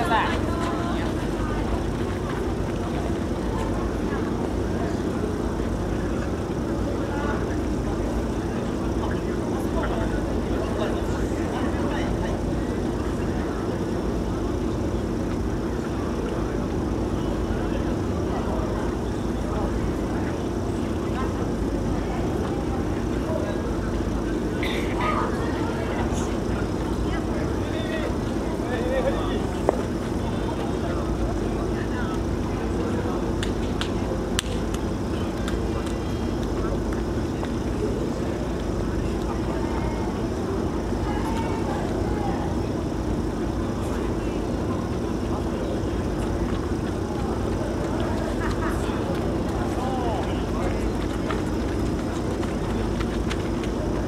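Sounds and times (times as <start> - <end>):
scattered voices: 0.0 - 54.0.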